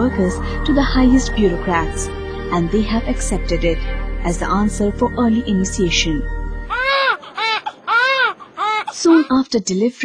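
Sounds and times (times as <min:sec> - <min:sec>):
newborn baby crying: 0:06.7 - 0:09.4.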